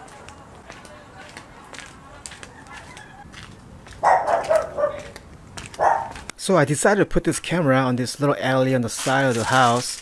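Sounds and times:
dog barking: 4.0s - 5.2s, 5.8s - 6.2s.

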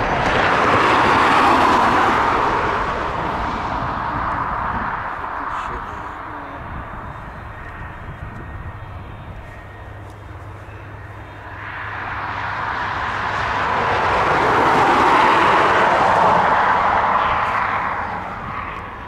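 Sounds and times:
jet engines roaring: 0.0s - 19.0s.

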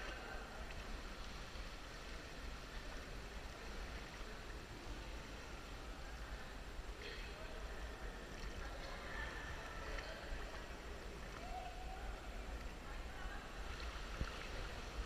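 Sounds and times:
faint distant voices: 0.0s - 15.0s
low rumble and hiss: 0.0s - 15.0s.

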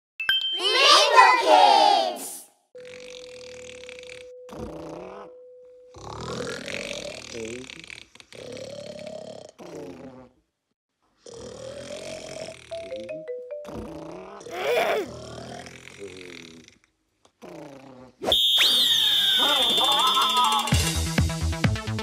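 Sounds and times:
cartoon snoring: 2.8s - 10.5s, 11.2s - 18.2s.

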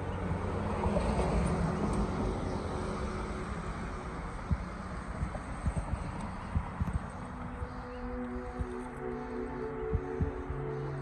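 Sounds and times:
vehicle engine hum with road noise: 0.0s - 11.0s
short low thumps: 4.4s - 7.7s, 9.8s - 10.5s.

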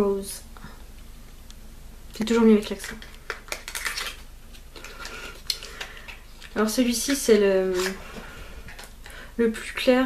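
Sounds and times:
cosmetics package clicking and rattling: 2.7s - 4.2s.

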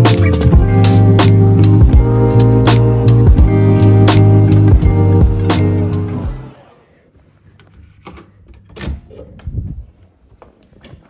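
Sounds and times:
guitar music: 0.0s - 6.5s.

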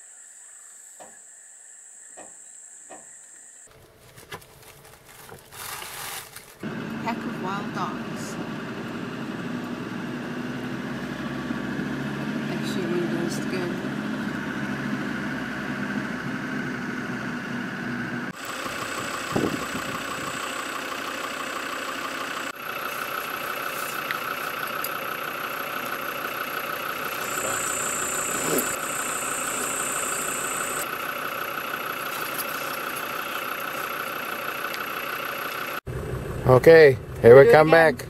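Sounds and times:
car engine running: 3.7s - 38.0s
high-pitched droning: 22.7s - 30.9s.

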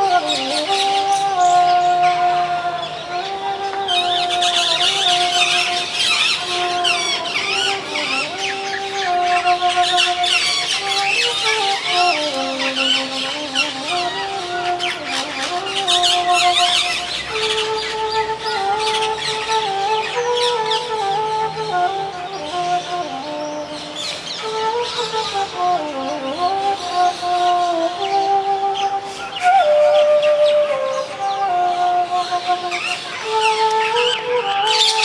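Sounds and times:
bamboo flute melody: 0.0s - 35.0s
birds chirping: 0.0s - 35.0s.

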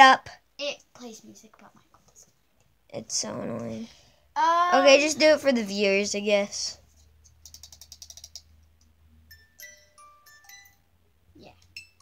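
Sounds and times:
music box tune: 9.3s - 11.0s, 11.7s - 12.0s.

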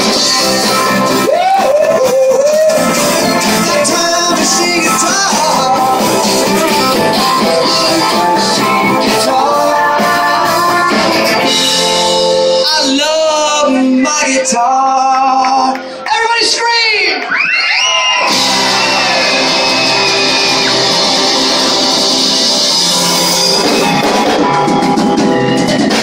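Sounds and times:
person singing: 0.0s - 15.9s
live rock band playing: 0.0s - 16.1s, 18.2s - 26.0s.

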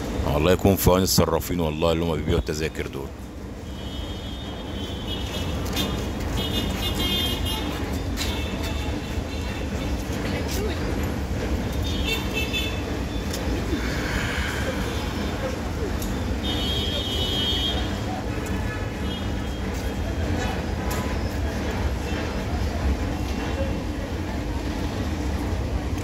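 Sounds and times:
low rumble of vehicle noise: 0.0s - 26.0s.

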